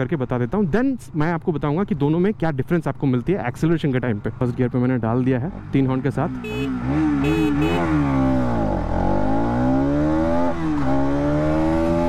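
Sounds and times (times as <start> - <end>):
motorcycle engine at full throttle: 4.3 - 12.0.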